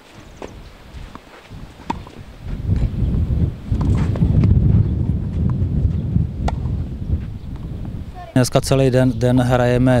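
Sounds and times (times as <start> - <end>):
wind rumble on microphone: 0.1 - 10.0
rackets hitting tennis ball: 0.4 - 2.9
tennis ball bouncing on clay: 0.4 - 2.9, 3.8 - 6.8.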